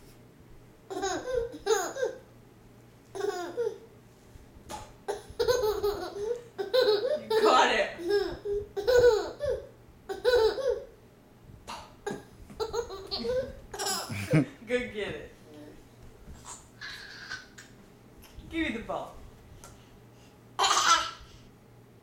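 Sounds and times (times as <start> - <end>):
toddler laughing: 0.9 - 2.3, 3.1 - 3.9, 5.1 - 11.0, 11.7 - 14.5, 16.4 - 17.6, 20.6 - 21.3.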